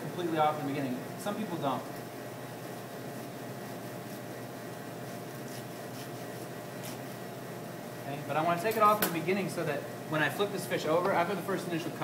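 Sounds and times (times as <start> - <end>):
faint ventilation hum: 0.0 - 12.0.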